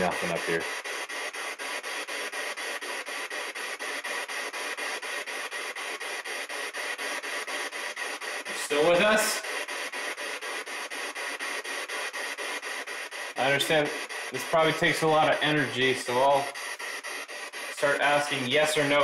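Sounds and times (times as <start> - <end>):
voice fragment through static: 0.0 - 0.7, 8.5 - 9.5, 13.4 - 16.6, 17.7 - 19.0
pulsing radio static: 0.0 - 19.0.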